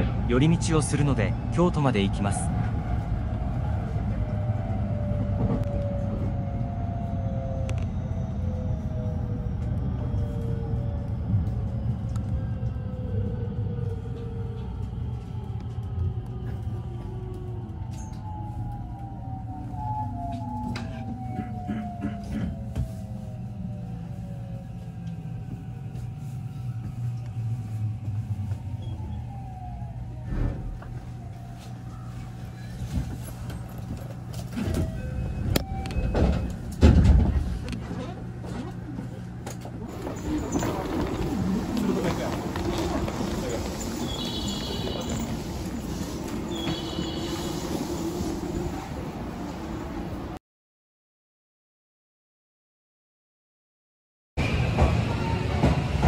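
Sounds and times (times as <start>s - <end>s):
low train rumble: 0.0s - 50.4s, 54.4s - 56.0s
steady train hum: 0.0s - 50.4s, 54.4s - 56.0s
electric train motors whining: 39.9s - 48.4s.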